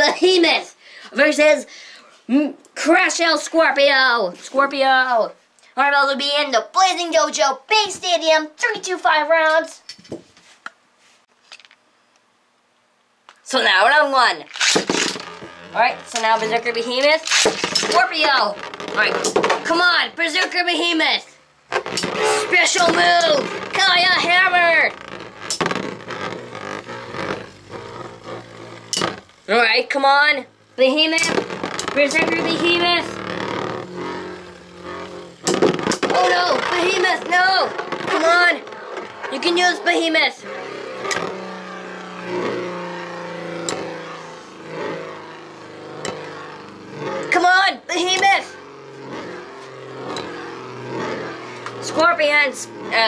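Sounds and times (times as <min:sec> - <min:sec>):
spinning tops grating whir: 0:13.6 - 0:53.0
spinning tops clicking together: 0:14.5 - 0:19.6
spinning tops clashing: 0:14.5 - 0:19.7, 0:21.7 - 0:29.5, 0:30.7 - 0:47.3.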